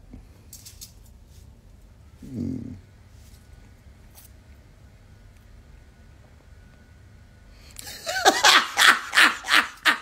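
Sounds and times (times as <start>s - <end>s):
man laughing heartily: 7.8s - 10.0s.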